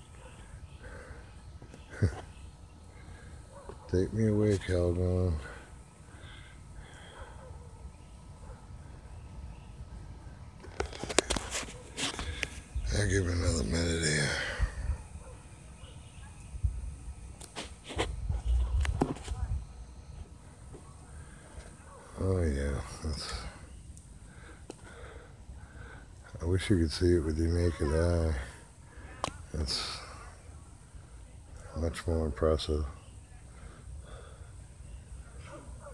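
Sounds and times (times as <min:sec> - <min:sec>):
breathing and sniffing: 0:05.4 - 0:07.6, 0:23.4 - 0:26.2, 0:33.5 - 0:35.6.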